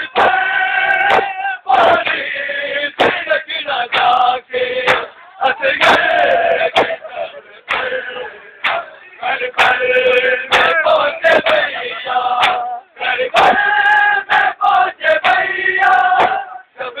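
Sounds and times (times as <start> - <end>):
men chanting in unison: 0.0 - 17.0
sharp knocks: 3.0 - 3.2, 13.4 - 13.6, 16.2 - 16.4.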